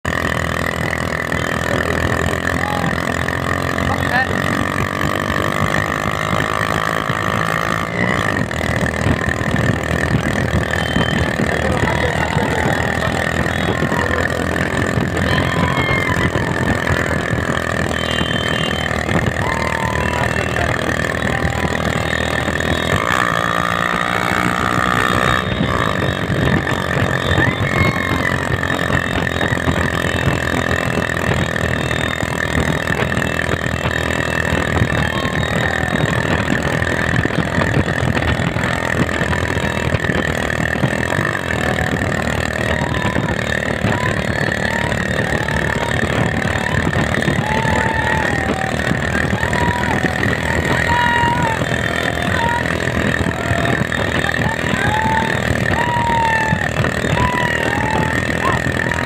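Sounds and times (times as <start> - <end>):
motorcycle engines droning: 0.0 - 59.0.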